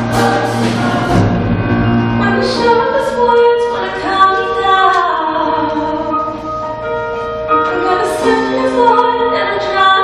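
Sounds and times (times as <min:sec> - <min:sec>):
large choir singing with band: 0:00.0 - 0:04.6.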